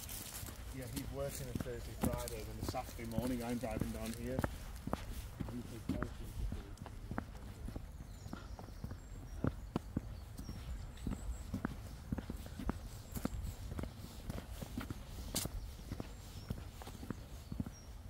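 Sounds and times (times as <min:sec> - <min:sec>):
footsteps on tarmac: 0:00.0 - 0:18.0.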